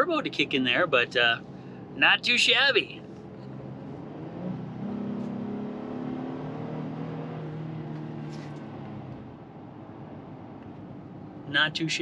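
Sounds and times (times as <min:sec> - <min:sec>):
car engine humming: 0:00.0 - 0:12.0
road noise: 0:00.0 - 0:12.0.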